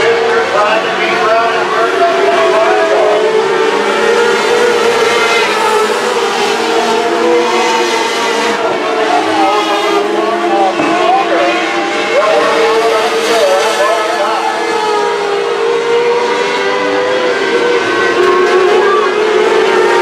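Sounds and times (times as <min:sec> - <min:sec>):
race car engines: 0:00.0 - 0:20.0.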